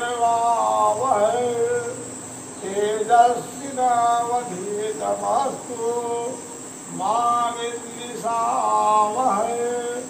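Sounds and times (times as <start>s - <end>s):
high cricket drone: 0.0s - 10.0s
melodic chanting: 0.0s - 10.0s.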